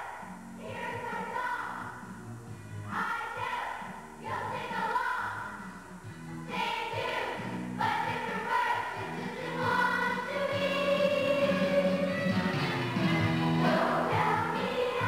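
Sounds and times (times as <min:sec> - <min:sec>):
children's choir singing: 0:00.0 - 0:02.0, 0:02.9 - 0:05.5, 0:06.5 - 0:15.0.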